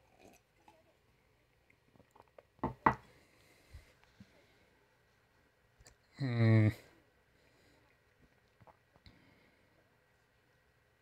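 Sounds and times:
sipping and mouth sounds: 0.0s - 1.0s, 7.9s - 9.1s.

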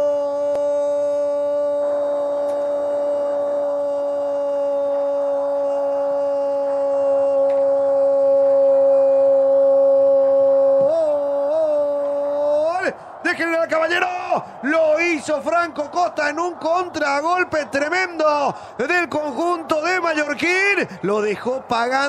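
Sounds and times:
commentator shouting goal: 10.8s - 22.0s.

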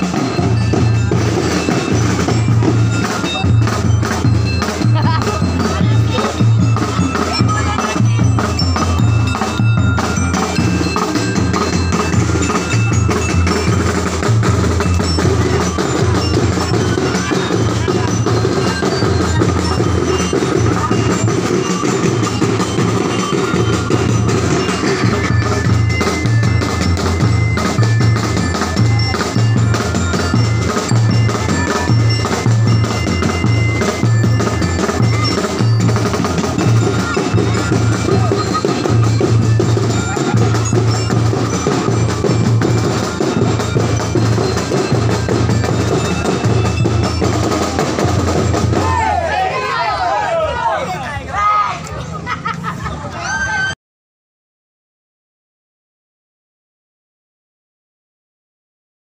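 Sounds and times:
bass drums pounding: 0.0s - 49.2s
snare drums: 0.0s - 49.6s
bright bell-like notes: 0.0s - 50.2s.

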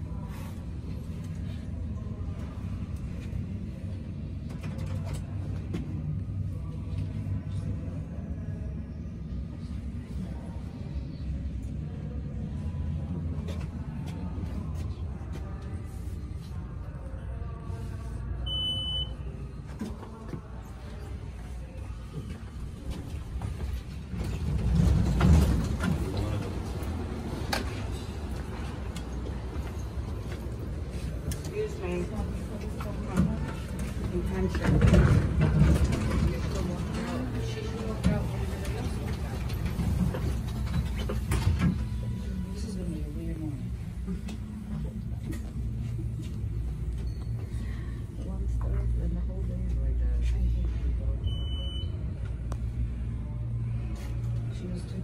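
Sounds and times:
train car rumbling: 0.0s - 55.0s
high beep: 18.4s - 19.2s, 51.2s - 52.0s
elevator doors sliding open: 23.2s - 30.8s, 31.4s - 42.4s.

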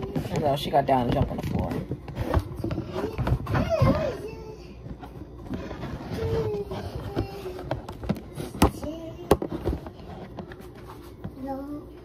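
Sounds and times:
low household background: 0.0s - 12.0s.

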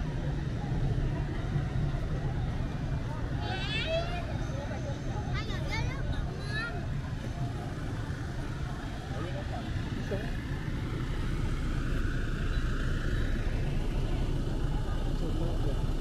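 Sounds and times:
city traffic noise: 0.0s - 16.0s
van engine idling: 0.0s - 16.0s.

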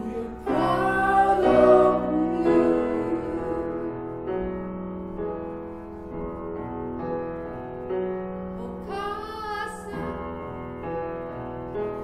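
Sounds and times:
woman singing: 0.0s - 4.0s, 8.6s - 10.3s
grand piano chords: 0.0s - 12.0s.

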